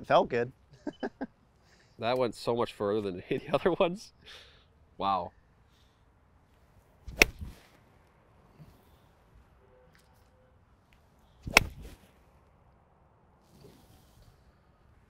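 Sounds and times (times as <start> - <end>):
golf club striking ball: 7.1 - 7.6, 11.4 - 12.0.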